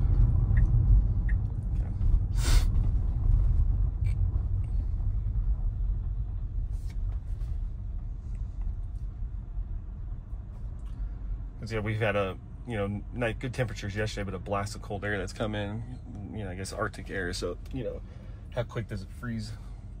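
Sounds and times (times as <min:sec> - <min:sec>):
road and tyre rumble: 0:00.0 - 0:20.0
brief hiss: 0:02.3 - 0:02.8.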